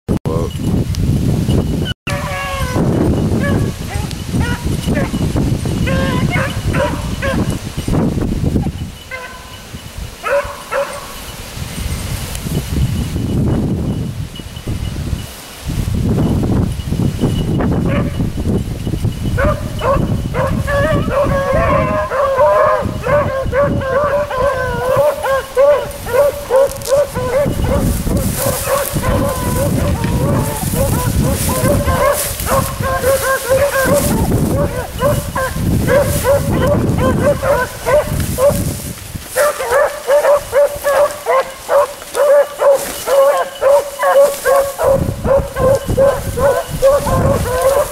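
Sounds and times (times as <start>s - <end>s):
wind buffeting microphone: 0.1s - 47.9s
dogs baying: 2.1s - 7.6s, 8.6s - 11.3s, 19.3s - 38.7s, 39.3s - 47.9s.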